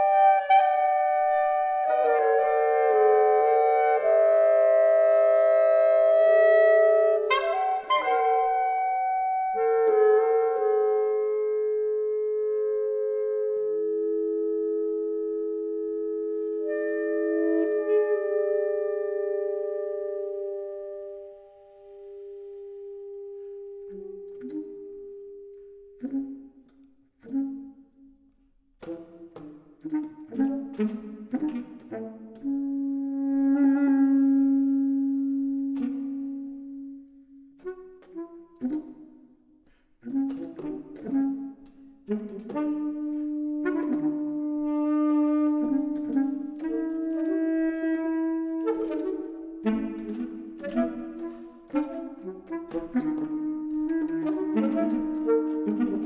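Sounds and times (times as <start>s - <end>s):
saxophone quartet playing: 0.0s - 27.9s, 28.8s - 39.2s, 40.0s - 56.0s.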